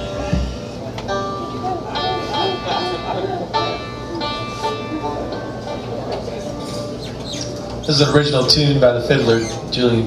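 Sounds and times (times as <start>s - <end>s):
acoustic string instruments plucking: 0.0s - 10.0s
crowd chatter: 0.0s - 10.0s.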